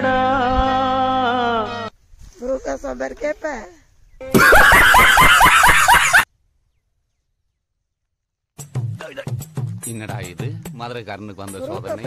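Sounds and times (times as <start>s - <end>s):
high-pitched laughter: 4.3s - 6.2s.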